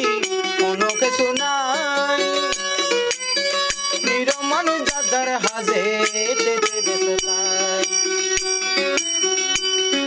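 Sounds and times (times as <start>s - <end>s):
man singing: 0.0s - 9.0s
mandolin picked notes: 0.0s - 10.0s.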